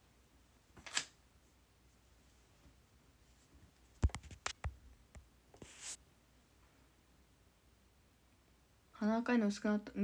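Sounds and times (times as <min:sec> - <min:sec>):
soft hissing noise: 0:05.3 - 0:09.0.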